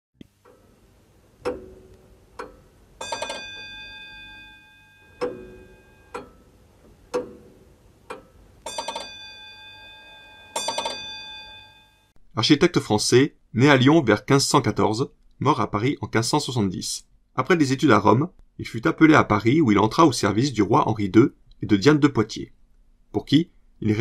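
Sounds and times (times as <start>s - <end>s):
clock ticking: 0.2s - 11.1s
rapid bell strikes: 3.0s - 6.1s, 8.7s - 12.1s.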